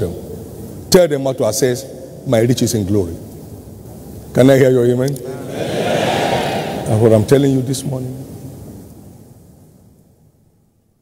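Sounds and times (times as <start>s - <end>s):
faint low room noise: 0.0s - 11.0s
man's amplified voice: 6.8s - 8.2s.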